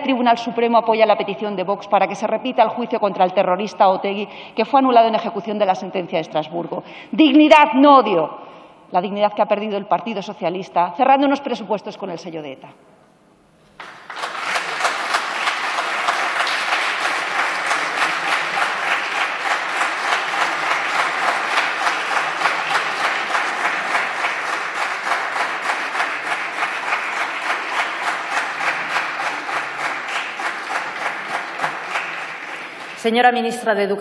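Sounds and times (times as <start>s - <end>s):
crowd applauding: 13.8s - 33.1s.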